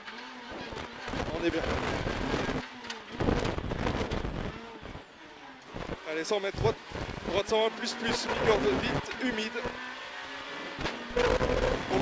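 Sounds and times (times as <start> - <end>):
rally car engine pulling hard: 0.0 - 12.0.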